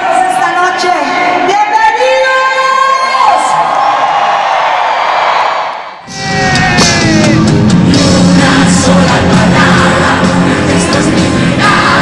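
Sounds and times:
crowd cheering and whooping: 3.2 - 7.7
band music with drums and bass: 6.1 - 12.0
person singing live: 6.1 - 12.0.

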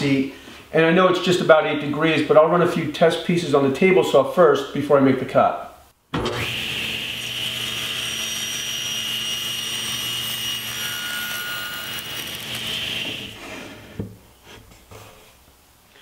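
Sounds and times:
table saw cutting wood: 6.2 - 14.0.

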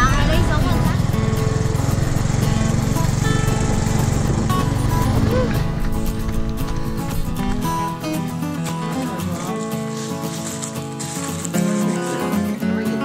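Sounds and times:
voices: 0.0 - 3.7
small vehicle engine running: 0.0 - 12.2
music: 0.0 - 13.0.

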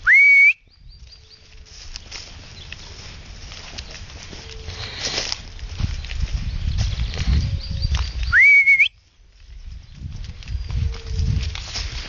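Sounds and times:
rising whistle: 0.0 - 0.6, 8.3 - 9.0
footsteps on leaves: 0.8 - 8.4, 9.0 - 12.0.

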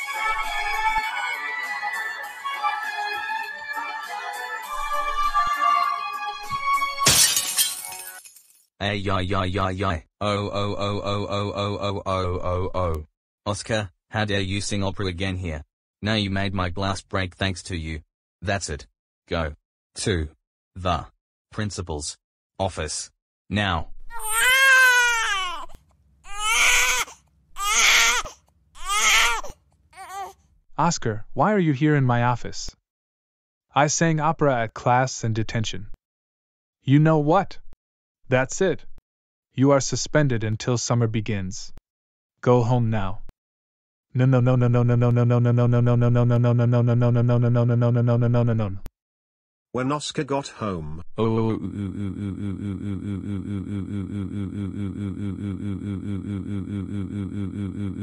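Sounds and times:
opera singing: 0.0 - 6.2
cartoon glass shattering effect: 7.0 - 8.7
cartoon character wailing: 26.3 - 28.2.

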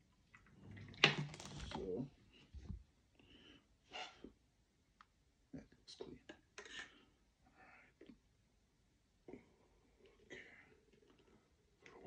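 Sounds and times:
plastic bottle clicks and rustles: 0.4 - 1.9.

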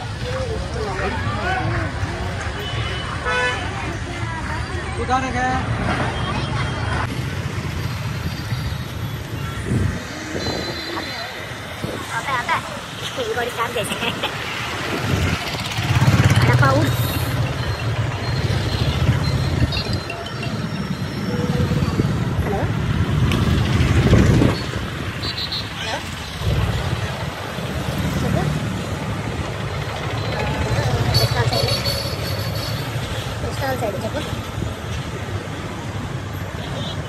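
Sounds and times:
road noise: 0.0 - 37.0.

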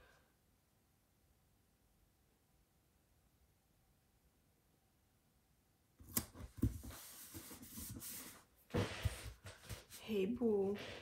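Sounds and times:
paper rustling: 6.1 - 8.4.

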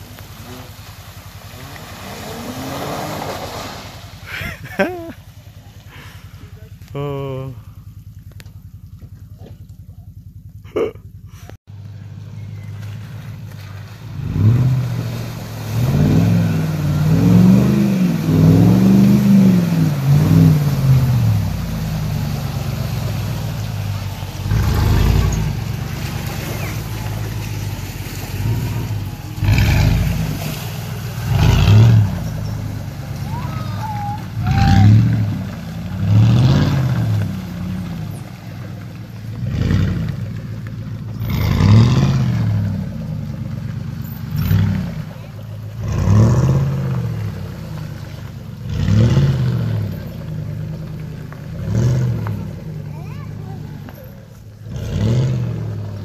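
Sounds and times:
truck engine revving: 0.0 - 56.0
tyres spinning in mud: 11.8 - 56.0.

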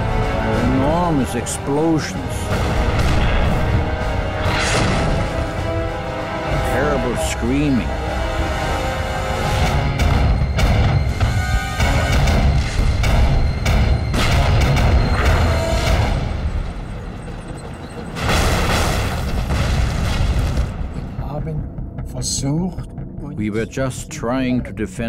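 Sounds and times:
music: 0.0 - 25.0
heavy low rumble: 0.4 - 25.0
explosions: 2.4 - 5.8, 18.1 - 21.4.

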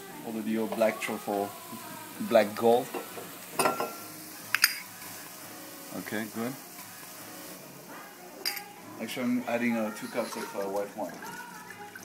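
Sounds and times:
food sizzling in a pan: 0.0 - 12.0
utensil clinking against pan: 2.9 - 4.9.

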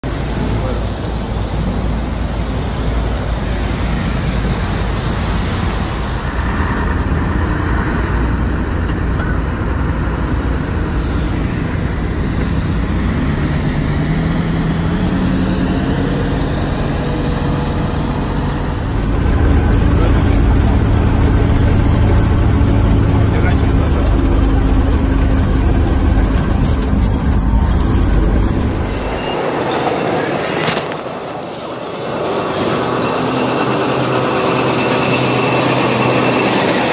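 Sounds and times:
snowplow truck engines rumbling: 0.0 - 36.9.

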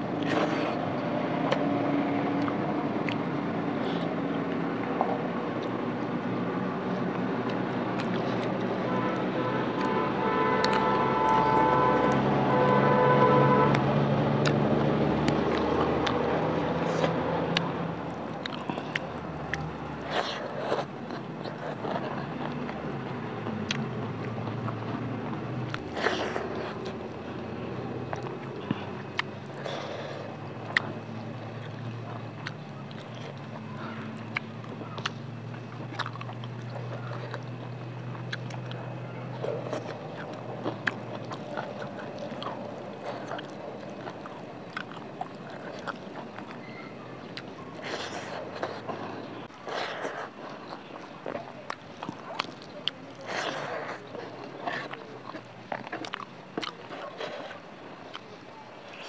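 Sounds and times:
chewing with wet mouth clicks: 0.0 - 59.0
droning hum: 0.0 - 59.0.

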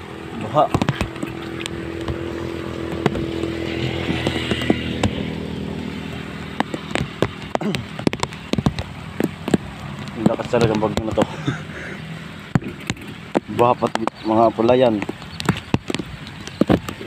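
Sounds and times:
sharp taps and clicks: 0.6 - 11.4, 12.5 - 17.0
small engine running: 1.0 - 7.8.

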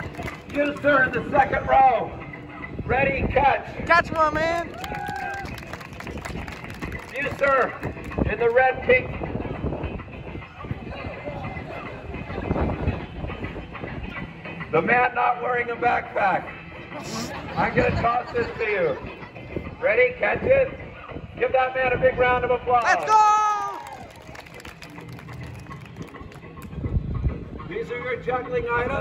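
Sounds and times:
audience clapping: 0.0 - 0.9, 4.1 - 8.2, 22.8 - 26.7.

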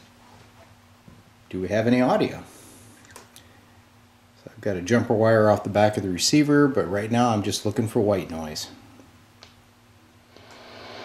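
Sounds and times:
radio static hiss: 10.3 - 11.0.

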